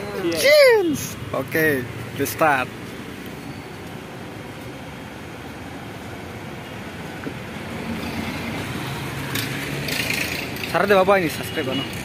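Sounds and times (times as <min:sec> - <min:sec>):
passing vehicles rumble: 0:00.0 - 0:12.0.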